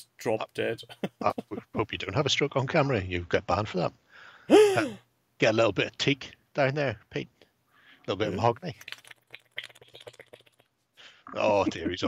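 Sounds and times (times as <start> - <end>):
low steady hum: 0.0 - 9.0, 11.0 - 12.0.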